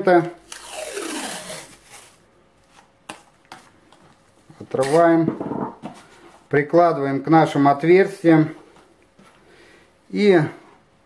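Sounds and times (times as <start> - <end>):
tape peeling off roll: 0.4 - 2.2.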